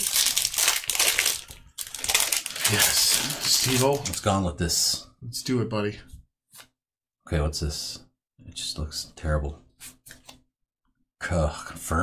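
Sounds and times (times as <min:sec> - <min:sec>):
foil wrapper crinkling: 0:00.0 - 0:04.3.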